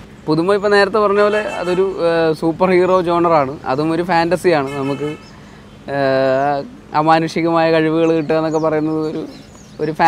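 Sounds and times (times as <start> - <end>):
man speaking with drawn-out vowels: 1.0 - 2.3, 4.4 - 5.2.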